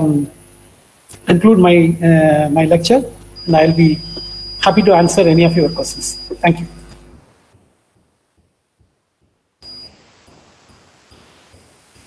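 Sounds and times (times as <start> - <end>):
thin high beep: 3.4 - 6.6, 9.6 - 9.9
burst of hiss: 9.6 - 12.0.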